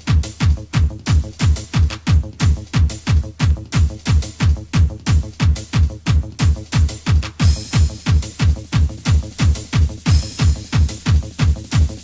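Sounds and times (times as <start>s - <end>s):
electronic dance track: 0.0s - 12.0s
kick drum: 0.0s - 12.0s.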